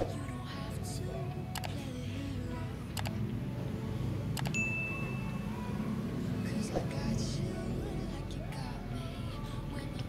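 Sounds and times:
low background rumble: 0.0s - 10.0s
short bell ding: 4.5s - 5.4s.

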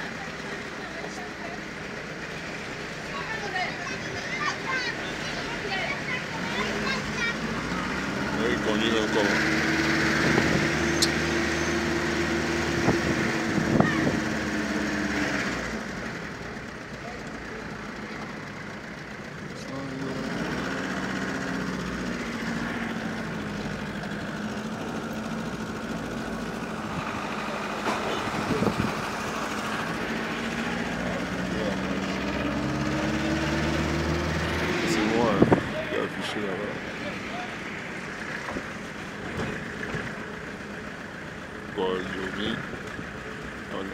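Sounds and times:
car engine from inside cabin: 0.0s - 43.9s.

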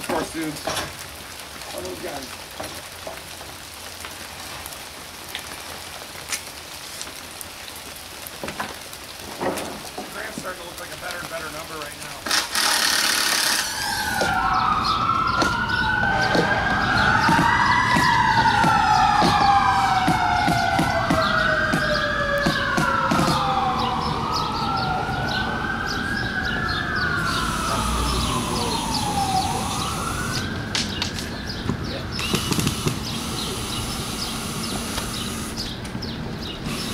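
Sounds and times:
sirens wailing: 10.2s - 36.9s.

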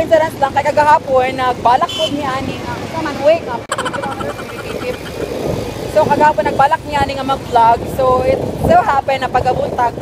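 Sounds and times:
road and wind noise: 0.0s - 10.0s
motorcycle engine running: 3.7s - 6.6s.

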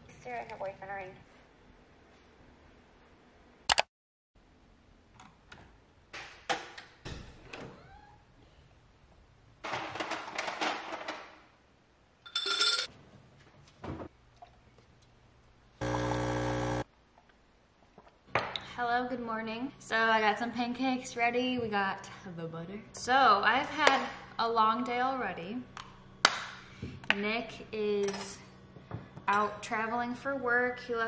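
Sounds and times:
buzzing electronic appliance beep: 15.8s - 16.8s.

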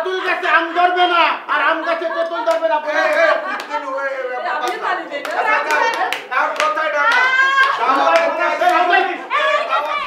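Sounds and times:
women laughing: 1.5s - 4.6s, 9.0s - 10.0s
hands clapping: 2.2s - 3.8s, 4.6s - 8.9s.

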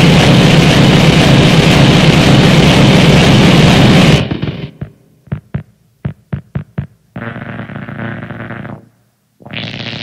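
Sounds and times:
harsh electronic noise music: 0.0s - 10.0s.

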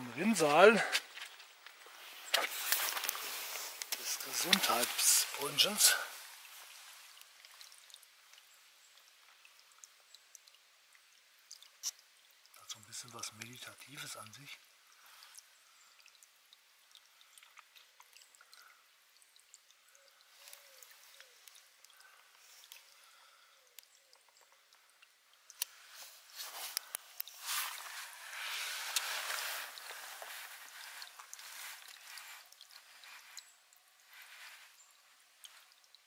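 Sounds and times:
water splashing onto wet stones: 0.2s - 8.4s.

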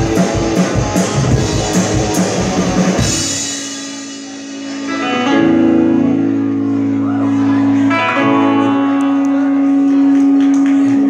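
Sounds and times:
rock band sustained note: 0.0s - 11.0s.

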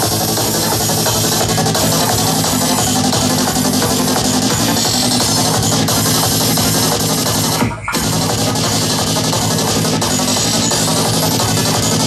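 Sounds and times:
psytrance electronic beat: 0.0s - 12.0s.

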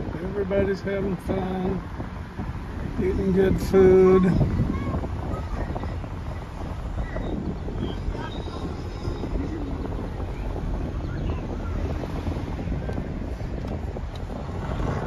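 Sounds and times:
car road and engine rumble: 0.0s - 15.0s
wind noise: 0.0s - 15.0s.

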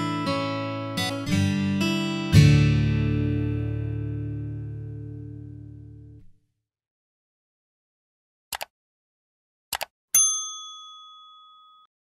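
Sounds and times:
bright bell ding: 10.2s - 11.9s.

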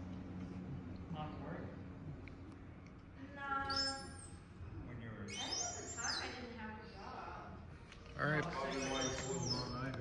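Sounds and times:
people talking: 3.2s - 4.2s, 5.1s - 7.6s, 8.2s - 10.0s.

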